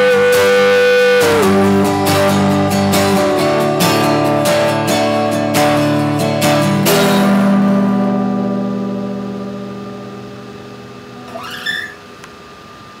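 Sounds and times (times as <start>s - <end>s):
acoustic guitar chord ringing: 0.0s - 12.2s
rising squeak: 11.2s - 12.1s.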